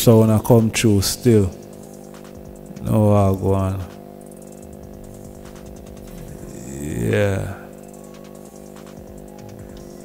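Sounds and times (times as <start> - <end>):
buzzing drone: 0.0 - 10.0.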